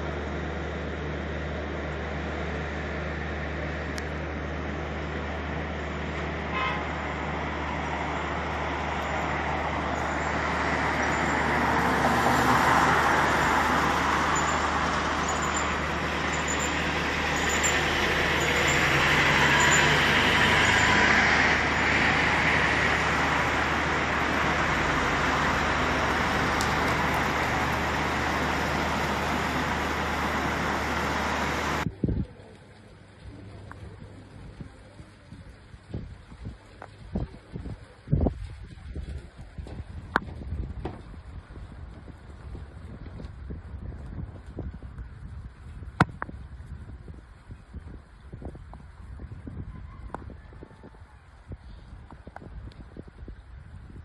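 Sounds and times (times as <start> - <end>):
passing cars: 0.0 - 31.9.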